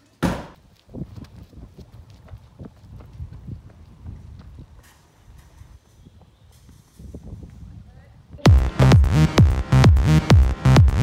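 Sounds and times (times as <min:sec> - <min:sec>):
running footsteps on asphalt: 0:00.6 - 0:06.8.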